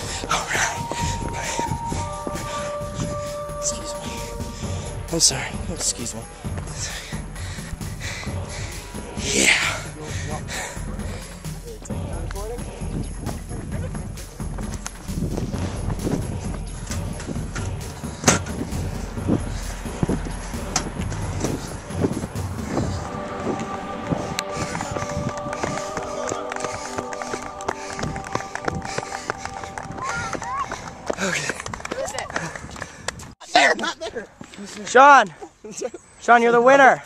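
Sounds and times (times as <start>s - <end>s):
sustained music chord: 0.0s - 12.9s, 15.4s - 31.1s
indistinct voices: 0.0s - 32.5s
running footsteps: 0.0s - 33.4s
wind rumble on microphone: 14.5s - 25.8s.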